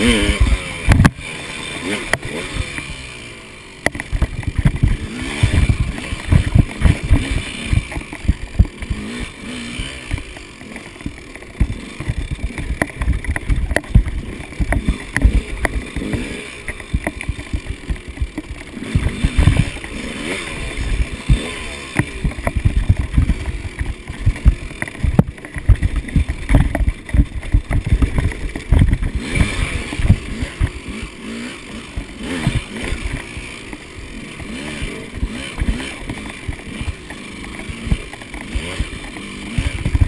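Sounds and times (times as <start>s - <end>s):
dirt bike engine revving: 0.0s - 40.0s.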